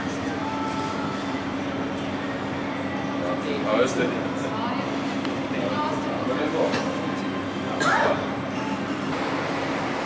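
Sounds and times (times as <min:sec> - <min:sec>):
low mechanical drone with hum: 0:00.0 - 0:10.0.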